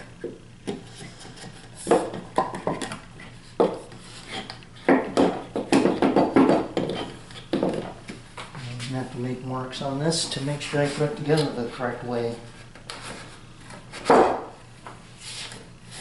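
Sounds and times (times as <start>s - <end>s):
wood knocking on wooden bench: 4.9s - 7.9s, 14.0s - 14.5s.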